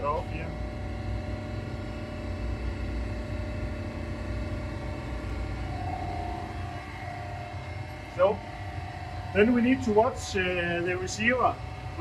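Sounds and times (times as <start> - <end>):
compressors humming: 0.0 - 12.0
faint steady whine: 0.0 - 12.0.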